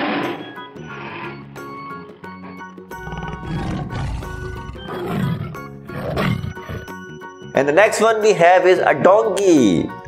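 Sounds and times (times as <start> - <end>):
tiger roaring and growling: 0.0 - 7.0
background music: 0.0 - 10.0.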